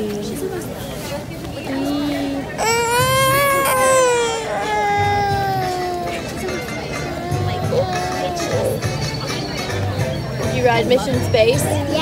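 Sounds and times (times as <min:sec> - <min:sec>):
toddler crying: 0:02.1 - 0:08.9.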